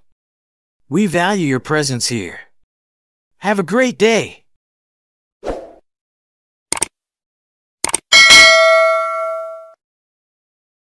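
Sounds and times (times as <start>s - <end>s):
notification bell ding: 8.2s - 9.8s.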